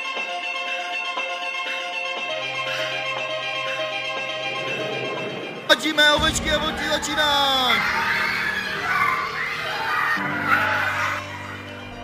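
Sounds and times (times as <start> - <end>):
children chattering and calling out: 7.2 - 12.0.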